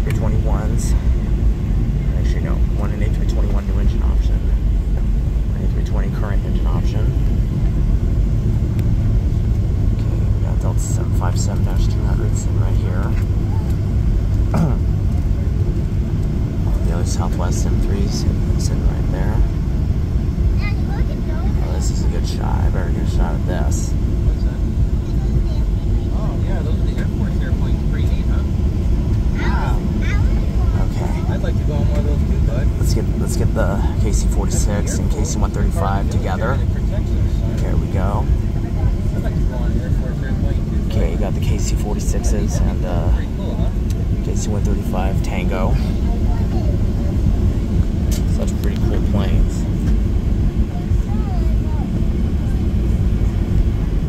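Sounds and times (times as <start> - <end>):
aircraft cabin low rumble: 0.0 - 54.0.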